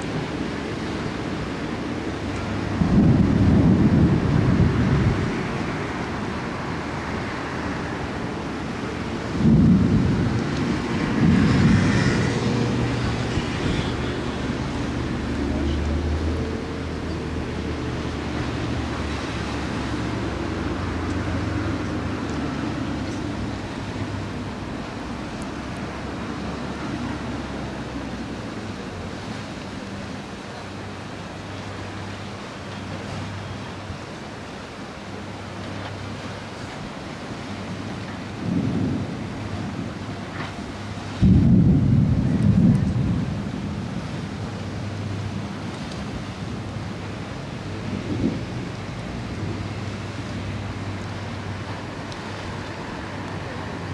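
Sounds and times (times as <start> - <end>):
surf: 0.0 - 53.9
wind: 0.0 - 53.9
thunder rumbling: 2.2 - 6.3, 9.0 - 15.4, 37.7 - 52.6.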